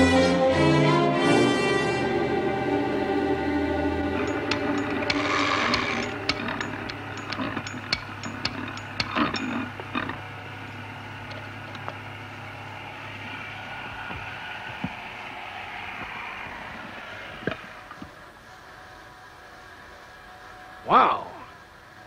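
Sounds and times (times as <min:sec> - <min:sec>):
steady low machine hum: 0:02.0 - 0:15.7
sharp irregular clicks: 0:04.2 - 0:10.2.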